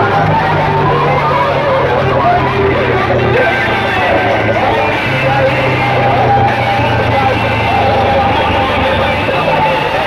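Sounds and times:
loud music through loudspeakers: 0.0 - 10.0.

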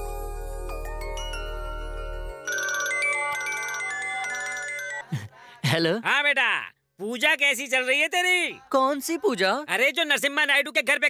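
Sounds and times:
chiming music cue: 0.0 - 5.1
phone ringtone melody: 2.3 - 5.1.

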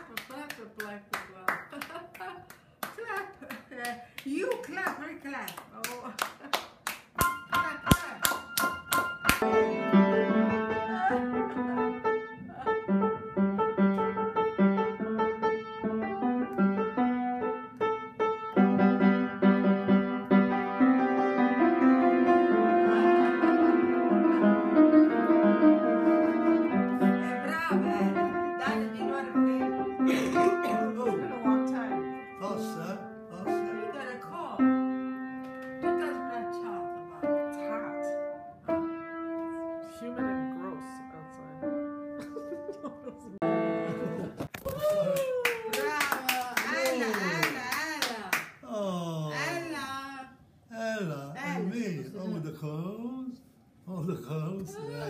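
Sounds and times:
hand clapping: 0.0 - 9.5, 44.4 - 48.6
upright piano playing: 7.2 - 44.4.

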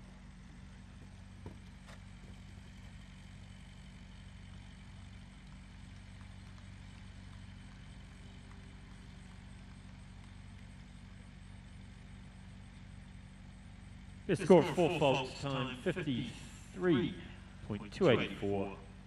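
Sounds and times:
faint outdoor background noise: 0.0 - 19.0
steady low hum: 0.0 - 19.0.

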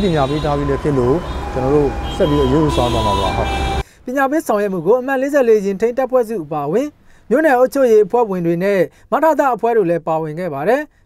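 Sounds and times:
road traffic passing: 0.0 - 7.3
man speaking: 0.0 - 10.9.

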